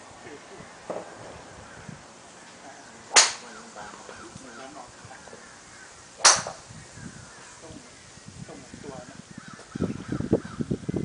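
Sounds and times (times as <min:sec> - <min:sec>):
golf clubs striking balls: 0:00.8 - 0:01.2, 0:02.4 - 0:05.4, 0:06.1 - 0:06.7.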